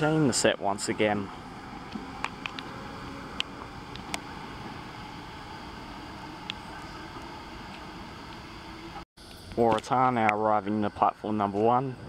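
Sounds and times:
electric train rumbling: 0:00.0 - 0:09.6.

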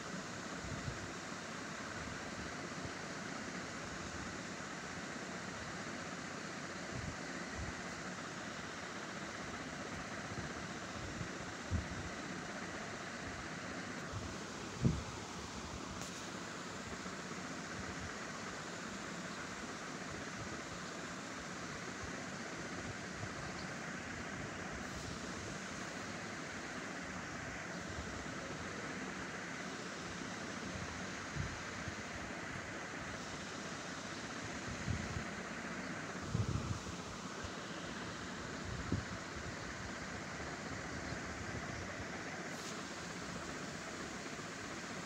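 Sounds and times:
steady background hiss: 0:00.0 - 0:45.0.

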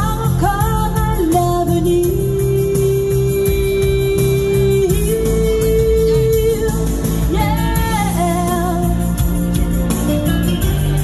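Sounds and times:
woman singing into a microphone: 0:00.0 - 0:09.4
instrumental backing music: 0:00.0 - 0:11.0.

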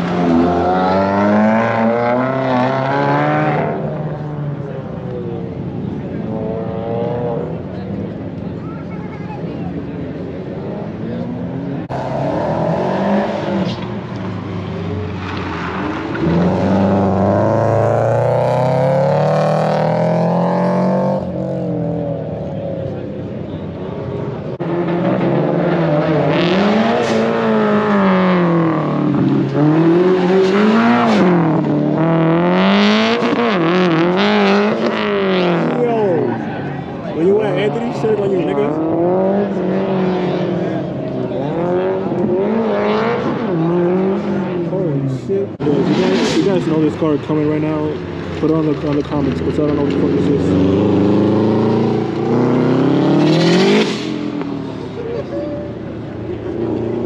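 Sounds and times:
car engine revving: 0:10.4 - 0:55.1.

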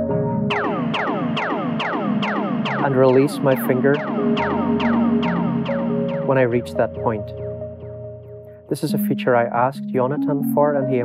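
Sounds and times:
synthesizer music: 0:00.0 - 0:11.0
tape delay echoes sweeping down: 0:00.5 - 0:07.6.

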